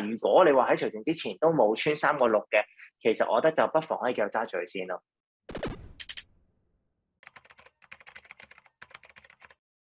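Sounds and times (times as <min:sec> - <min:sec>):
rapid keyboard keystroke clicks: 0:07.2 - 0:09.6.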